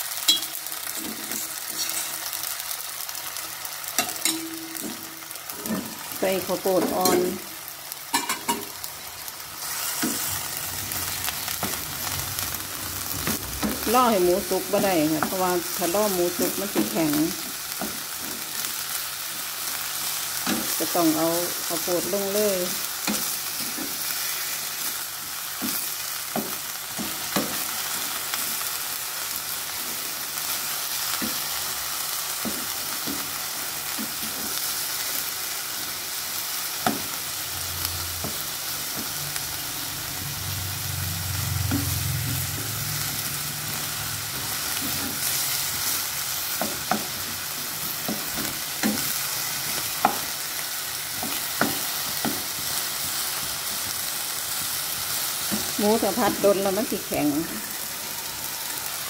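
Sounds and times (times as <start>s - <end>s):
meat sizzling in a hot pan: 0.0s - 59.0s.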